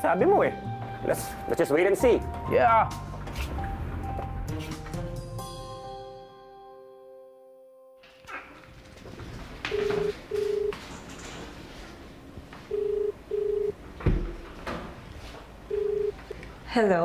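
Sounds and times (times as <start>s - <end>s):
telephone ringing tone beeps: 9.7s - 10.8s, 12.7s - 13.8s, 15.7s - 16.3s
thump: 14.0s - 14.8s.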